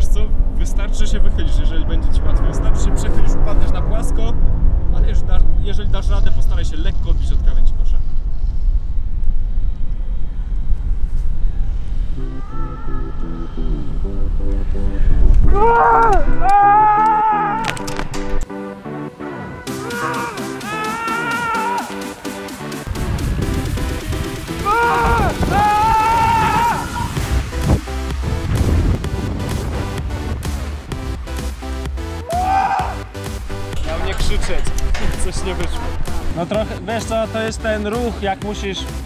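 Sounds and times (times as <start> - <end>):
wind buffeting microphone: 0.0 - 16.5, 22.9 - 31.2
background music with regular pulse: 11.7 - 39.0
man yelling high cries: 15.5 - 17.7, 19.7 - 22.0, 24.6 - 27.2, 32.2 - 33.0.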